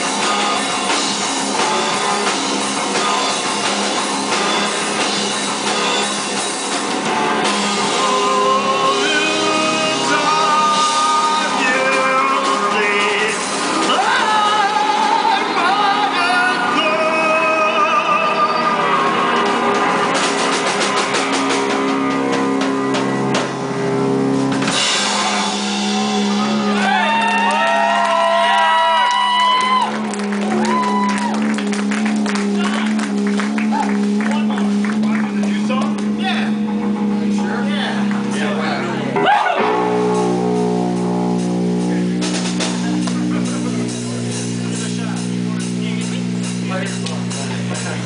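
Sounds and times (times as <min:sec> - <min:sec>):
drum kit playing: 0:00.0 - 0:17.8, 0:18.8 - 0:48.0
distorted electric guitar: 0:00.0 - 0:48.0.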